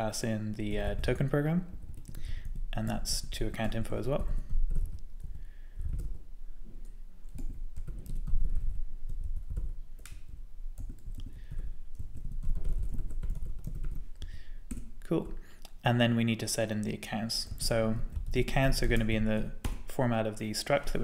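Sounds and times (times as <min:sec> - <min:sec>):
computer keyboard typing: 0:01.7 - 0:06.2, 0:07.2 - 0:14.9.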